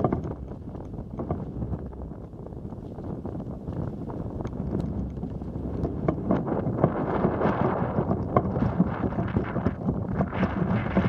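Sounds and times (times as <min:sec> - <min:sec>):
small clicks and knocks: 0:00.0 - 0:11.0
wind buffeting microphone: 0:00.0 - 0:11.0.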